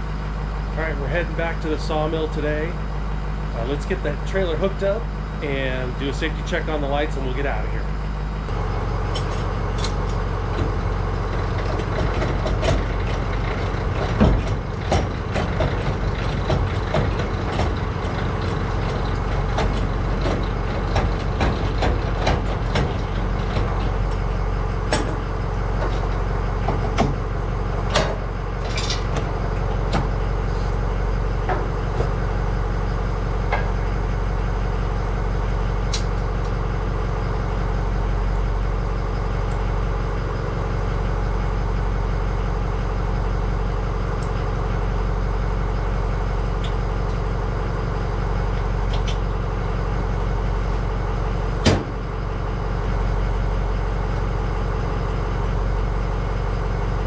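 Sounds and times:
pickup truck engine idling: 0.0s - 57.0s
metal clicks and clanks: 9.1s - 24.2s, 27.8s - 30.2s.

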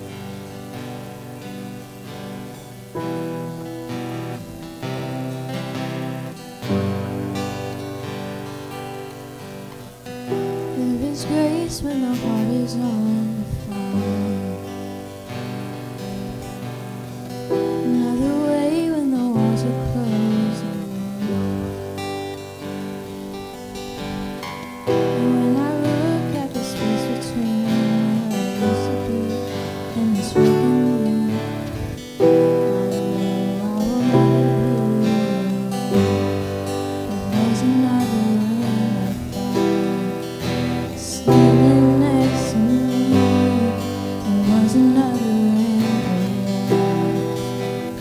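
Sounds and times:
acoustic guitar: 0.0s - 48.0s
grand piano: 0.0s - 48.0s
woman singing worship song: 10.6s - 15.5s, 17.6s - 22.1s, 24.9s - 48.0s.

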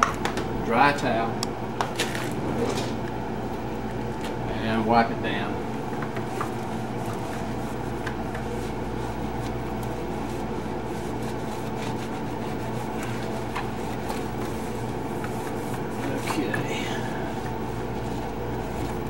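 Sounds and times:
steady low hum: 0.0s - 19.0s
towel rubbing plastic: 6.2s - 19.0s.

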